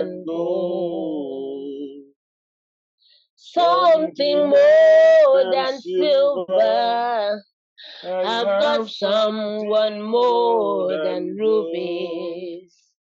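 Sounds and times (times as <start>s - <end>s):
person singing unaccompanied: 0.0s - 2.1s, 3.4s - 12.8s.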